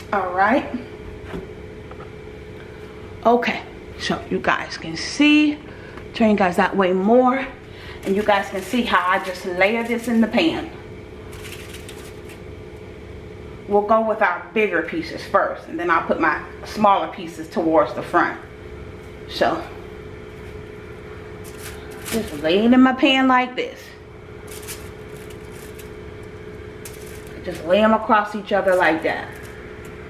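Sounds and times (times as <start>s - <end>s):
steady low hum: 0.0s - 30.0s
foil crinkling and tapping: 11.2s - 12.5s, 21.4s - 22.6s, 24.4s - 27.8s, 28.6s - 30.0s.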